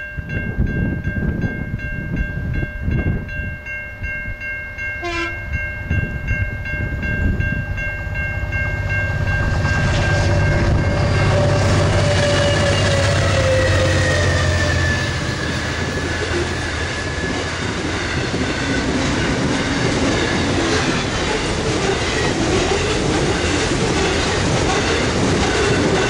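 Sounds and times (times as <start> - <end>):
ringing crossing signal: 0.0 - 22.3
diesel freight train engine rumble: 5.0 - 26.0.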